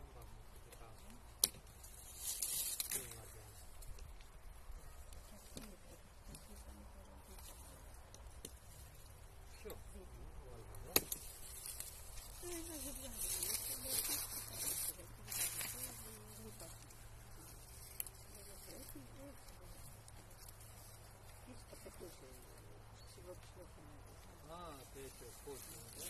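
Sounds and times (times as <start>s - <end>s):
rustling leaves and twigs: 0.0s - 26.0s
pruning shears snipping: 0.7s - 3.2s, 10.7s - 12.6s.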